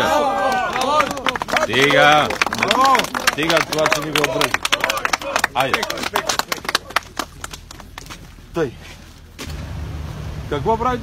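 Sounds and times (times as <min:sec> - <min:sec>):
people clapping: 0:00.0 - 0:08.3.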